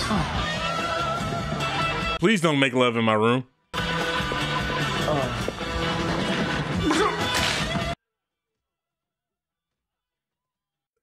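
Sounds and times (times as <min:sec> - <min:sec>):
movie soundtrack music: 0:03.7 - 0:08.0.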